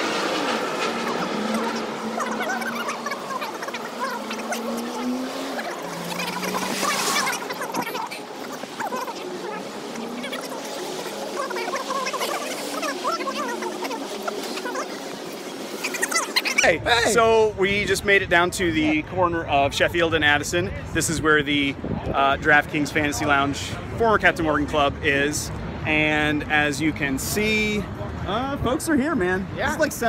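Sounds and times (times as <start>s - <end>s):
sped-up high-pitched chatter: 0.0s - 17.1s
street noise: 0.0s - 30.0s.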